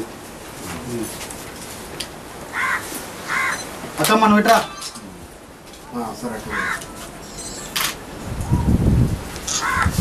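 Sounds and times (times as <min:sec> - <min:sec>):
bird calling: 0:02.5 - 0:03.8, 0:06.4 - 0:07.8, 0:09.5 - 0:10.0.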